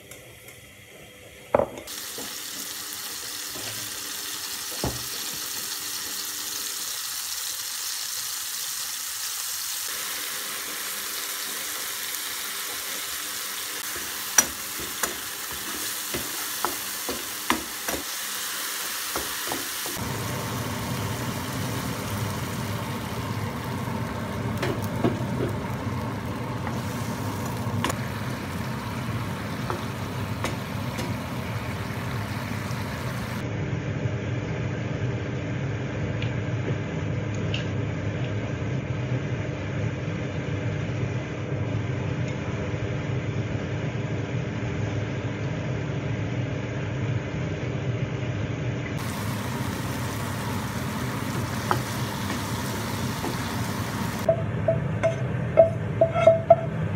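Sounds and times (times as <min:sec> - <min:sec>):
tomato and chilli sizzling in oil: 0:01.7 - 0:33.4, 0:49.0 - 0:54.4.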